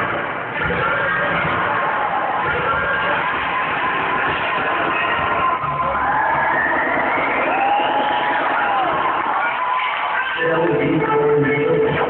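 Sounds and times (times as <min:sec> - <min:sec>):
crowd noise: 0:00.0 - 0:12.0
dance music over speakers: 0:00.0 - 0:12.0.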